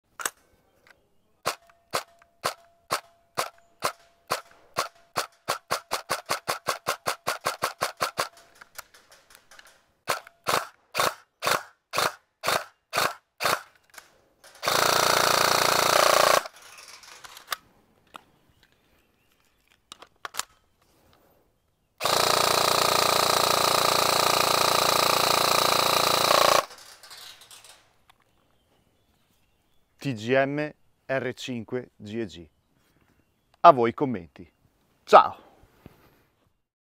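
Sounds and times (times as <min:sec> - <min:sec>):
airsoft gun firing: 0:01.4 - 0:13.7, 0:14.5 - 0:16.6, 0:22.0 - 0:26.8.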